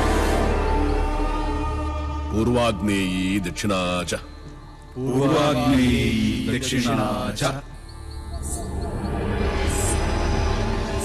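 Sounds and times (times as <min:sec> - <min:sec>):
low background film music: 0:00.0 - 0:11.0
man chanting: 0:02.2 - 0:04.4, 0:05.0 - 0:07.7.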